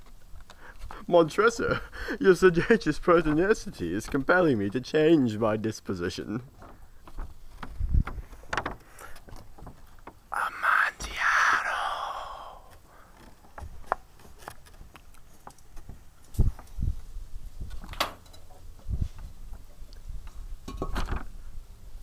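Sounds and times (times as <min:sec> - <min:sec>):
person whispering: 0:10.3 - 0:12.9.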